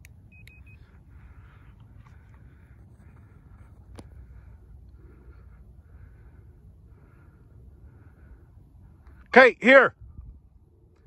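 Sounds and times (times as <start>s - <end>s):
low outdoor rumble: 0.0s - 11.0s
short high beeps: 0.3s - 0.9s.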